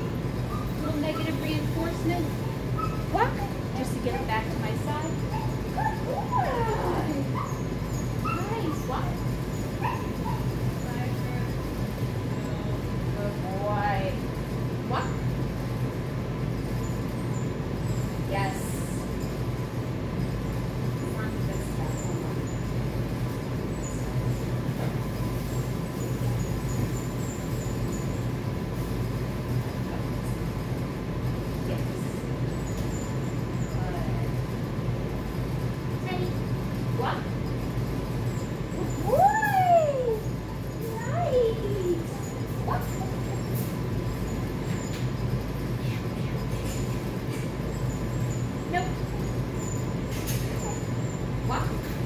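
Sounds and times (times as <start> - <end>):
low room hum: 0.0 - 52.0
puppy whining: 0.4 - 1.7, 2.3 - 10.7, 38.6 - 45.1.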